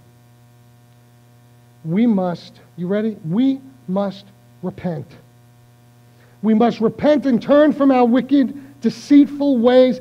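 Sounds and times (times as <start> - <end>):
mains hum: 0.0 - 10.0
man speaking: 1.8 - 5.3, 6.4 - 10.0.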